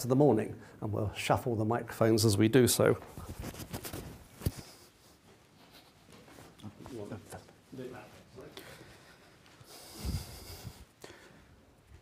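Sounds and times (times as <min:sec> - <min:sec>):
microphone handling rustle: 0:03.0 - 0:05.0.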